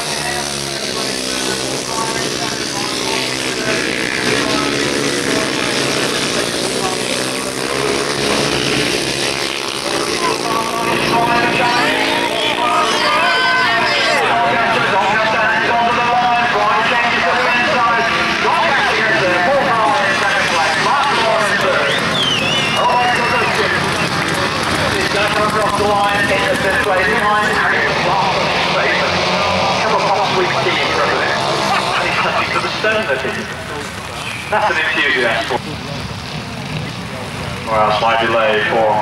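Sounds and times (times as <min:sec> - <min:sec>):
racing motorcycles revving: 0:00.0 - 0:39.0
voices: 0:00.0 - 0:39.0.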